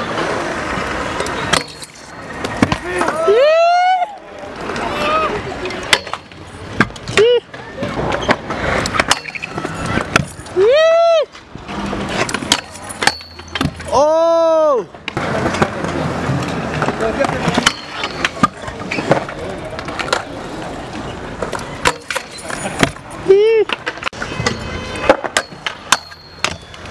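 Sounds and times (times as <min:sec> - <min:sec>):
scooter wheels rolling on concrete: 0:00.0 - 0:26.9
person shouting: 0:02.8 - 0:04.2, 0:10.6 - 0:11.3, 0:13.9 - 0:14.9.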